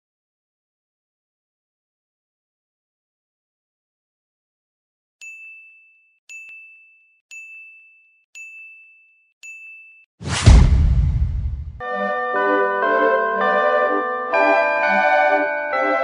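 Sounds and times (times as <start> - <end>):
loud hit with deep boom: 10.3 - 11.8.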